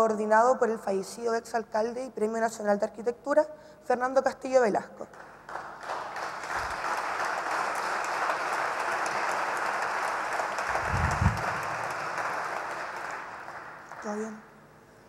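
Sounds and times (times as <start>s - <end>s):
audience applauding: 5.5s - 14.4s.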